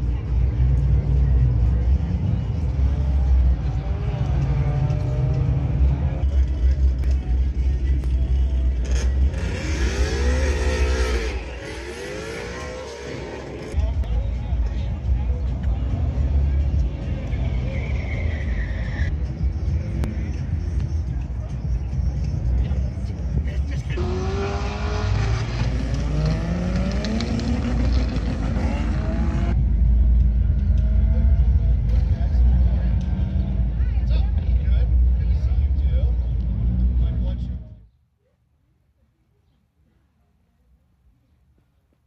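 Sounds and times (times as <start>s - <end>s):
car engines rumbling: 0.0s - 38.0s
engine revving: 8.8s - 13.8s, 24.0s - 29.6s.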